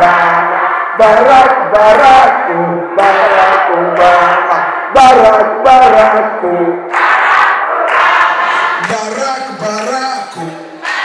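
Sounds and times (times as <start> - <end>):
man singing chant: 0.0 - 6.3, 8.8 - 10.8
crowd singing and shouting: 0.0 - 11.0.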